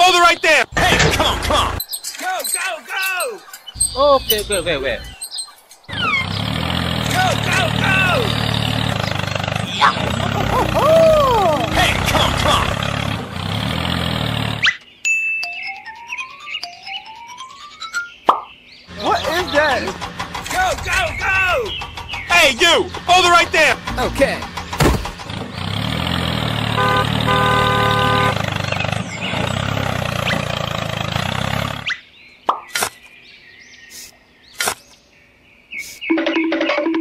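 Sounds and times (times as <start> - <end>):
engine-like rumble: 0.7 - 1.8, 5.9 - 14.7, 18.9 - 31.9
squeaky high-pitched voices laughing: 0.8 - 1.8, 9.7 - 12.7
sharp hit: 23.9 - 25.3.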